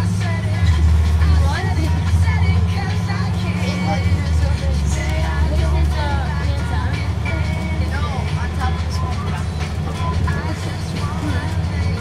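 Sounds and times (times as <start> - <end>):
bus engine drone: 0.0 - 12.0.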